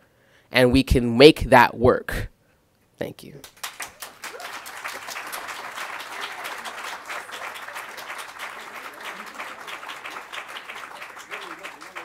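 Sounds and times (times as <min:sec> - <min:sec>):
audience applauding: 0:03.4 - 0:12.0.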